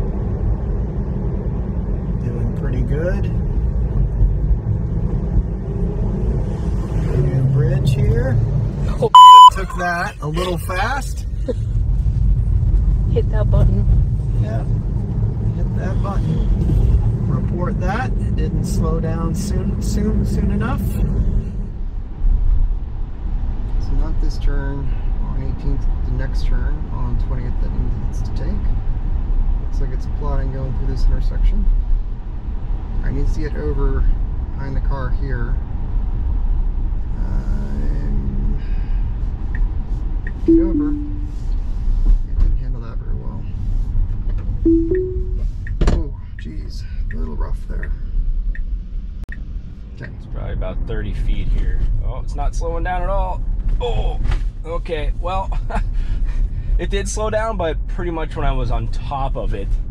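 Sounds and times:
road and tyre rumble in car: 0:00.0 - 0:59.9
two-note chimes: 0:40.5 - 0:41.3, 0:44.7 - 0:45.4.

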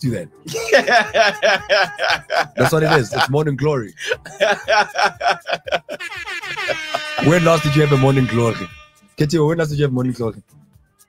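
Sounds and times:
laughter: 0:00.5 - 0:03.4, 0:04.0 - 0:07.4
air horn sound effect: 0:04.7 - 0:09.2.

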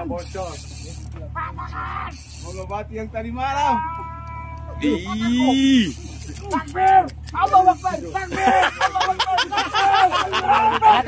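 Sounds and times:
men talking and calling out: 0:00.0 - 0:11.0
steady low hum: 0:00.0 - 0:11.0.

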